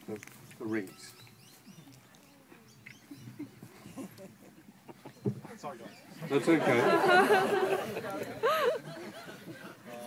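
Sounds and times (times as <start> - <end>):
quiet talk of people: 0.0 - 10.0
faint bird chirps: 0.7 - 3.7.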